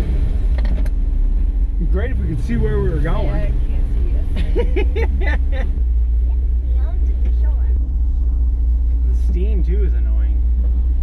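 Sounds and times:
deep engine drone: 0.0 - 11.0.

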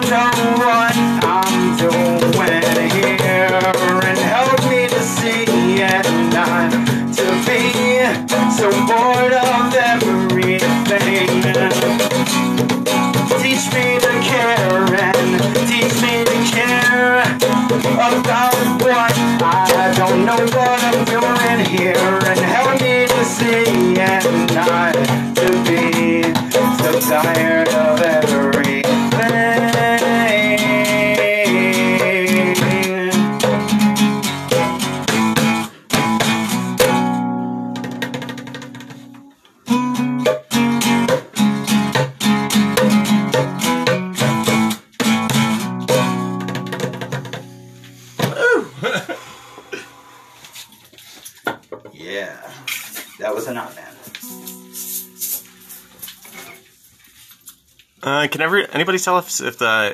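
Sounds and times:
electric guitar strumming chords: 0.0 - 49.0, 54.2 - 55.5.

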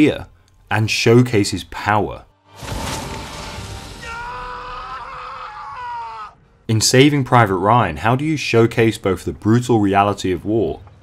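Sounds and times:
man screaming: 3.9 - 6.4.

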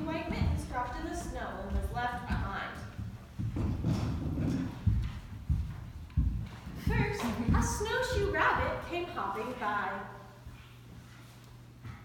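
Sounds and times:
child's bare feet on wooden floor: 0.0 - 9.0.

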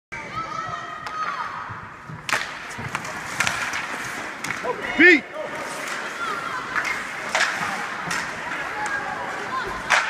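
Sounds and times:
hockey sticks clacking: 1.0 - 10.0
skate blades scraping ice: 2.2 - 10.0.

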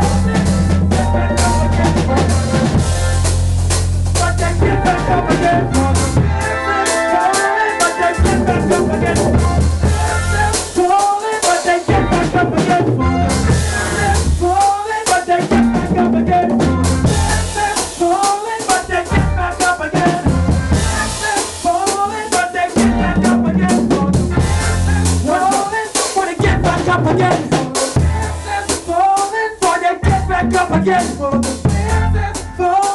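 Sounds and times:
bass: 0.0 - 11.2, 11.8 - 32.9
drum kit: 0.0 - 32.9
live band playing soca: 0.0 - 32.9.

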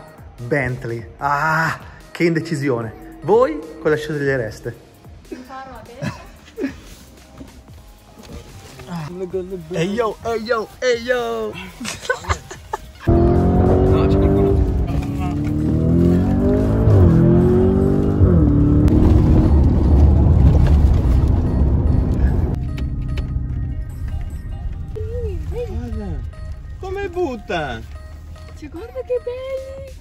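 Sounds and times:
car engine revving: 13.1 - 29.1.

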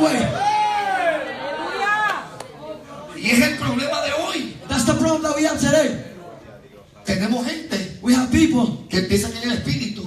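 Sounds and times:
background chatter: 0.8 - 5.0, 5.8 - 7.1.

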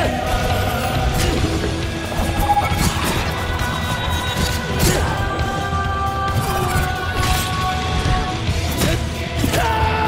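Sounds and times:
orchestral film score: 0.0 - 10.0.

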